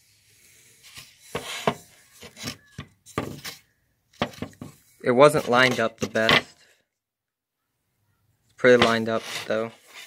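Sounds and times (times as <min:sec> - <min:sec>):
scraping rubs on wooden handle: 0:08.8 - 0:10.0.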